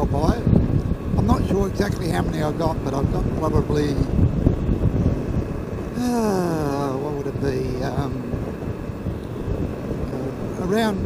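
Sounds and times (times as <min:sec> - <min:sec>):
motorcycle engine and road rumble: 0:00.0 - 0:11.0
wind rush: 0:00.0 - 0:11.0.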